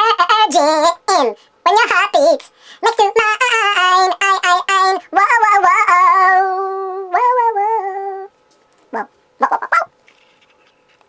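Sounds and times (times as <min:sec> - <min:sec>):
sharp vocal yelps: 0:09.0 - 0:09.9.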